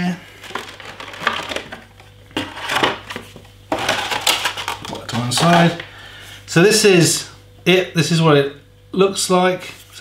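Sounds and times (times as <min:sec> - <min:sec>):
plastic wrapping crinkling: 0:00.3 - 0:05.8.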